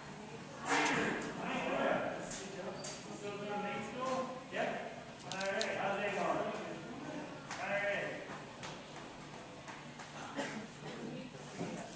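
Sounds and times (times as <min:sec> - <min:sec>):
small clicks: 0:05.2 - 0:05.7.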